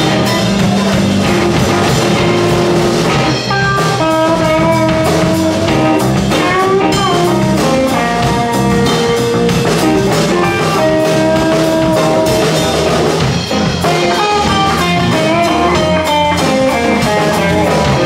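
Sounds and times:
blues-rock band playing: 0.0 - 18.0
electric guitar lead: 0.0 - 18.0.

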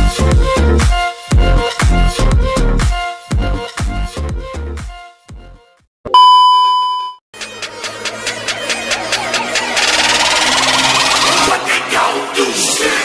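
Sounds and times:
high test-tone beep: 6.1 - 7.2
pulsing electronic build-up: 7.4 - 11.7.

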